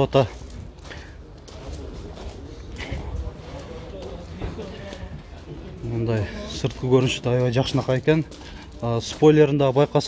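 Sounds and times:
faint voices: 0.0 - 10.0
footsteps on gravel: 6.0 - 10.0.

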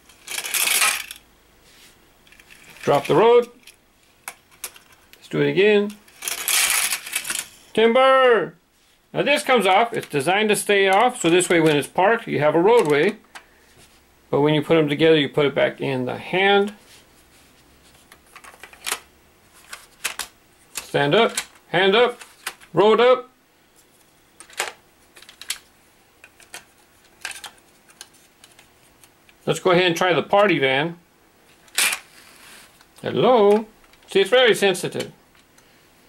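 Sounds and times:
plastic toy track clattering: 0.2 - 1.2, 6.1 - 7.5.

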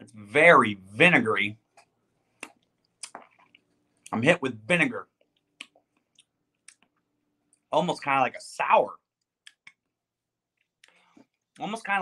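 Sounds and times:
wet mouth clicks and lip smacks: 2.4 - 4.2, 5.3 - 7.6, 9.2 - 9.9.

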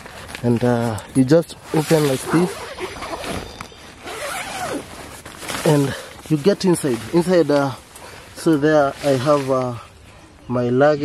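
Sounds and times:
tent door zipper pulled open: 1.6 - 6.0.

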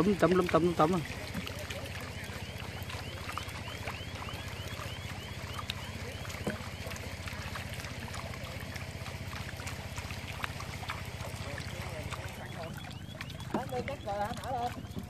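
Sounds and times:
small engine throbbing: 0.0 - 15.0
water splashes: 0.0 - 15.0.

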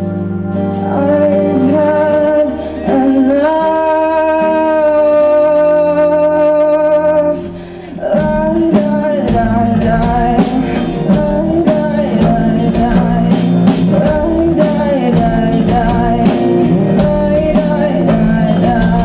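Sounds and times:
rock band playing: 0.0 - 19.0
woman singing: 0.6 - 19.0.

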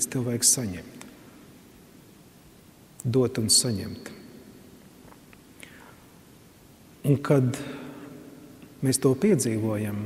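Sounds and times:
soft breath: 5.6 - 6.1.

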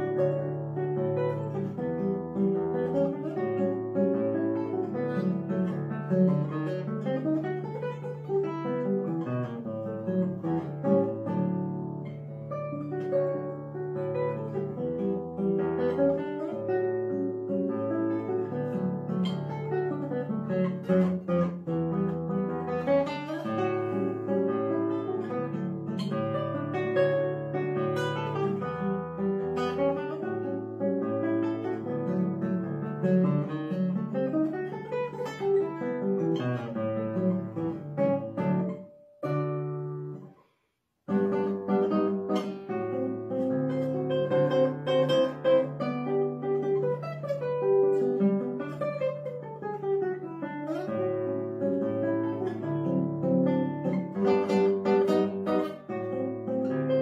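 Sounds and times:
classical guitar fingerstyle: 0.0 - 57.0.

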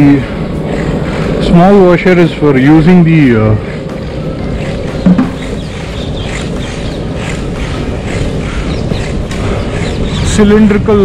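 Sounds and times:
longboard wheels rolling on asphalt: 0.0 - 11.0
wind on microphone: 0.0 - 11.0.

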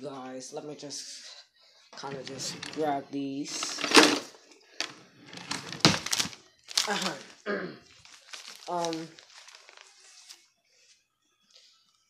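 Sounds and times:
papers rustling: 2.0 - 2.9, 3.5 - 10.4.

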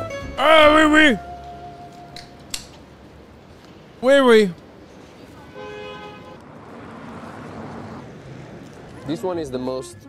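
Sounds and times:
street traffic noise: 0.0 - 10.0
two-pitch car horn: 5.4 - 6.4.

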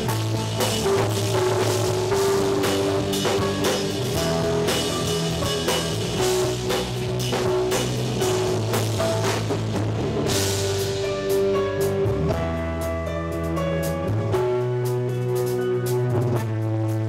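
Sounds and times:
bass guitar: 0.0 - 17.0
drum kit steady beat: 0.0 - 17.0
electric guitar: 0.0 - 17.0
keyboard sustained notes: 0.0 - 17.0.

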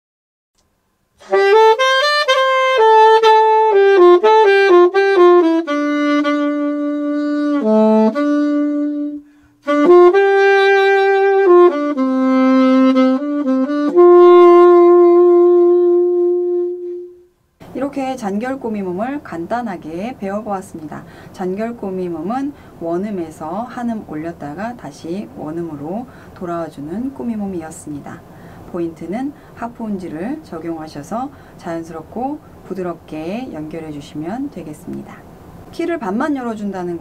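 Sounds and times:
solo alto saxophone melody: 1.2 - 17.4.

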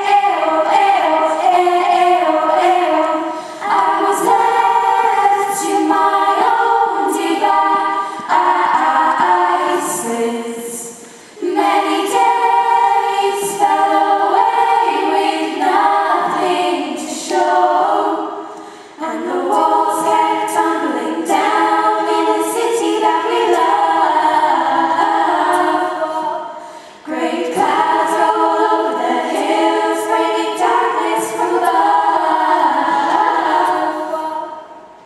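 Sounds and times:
girls singing in harmony: 0.0 - 35.0.

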